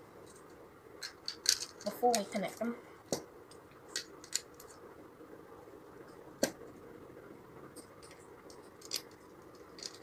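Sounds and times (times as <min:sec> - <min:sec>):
plastic toy bricks clicking: 0:01.0 - 0:02.3, 0:03.9 - 0:04.7, 0:08.8 - 0:10.0.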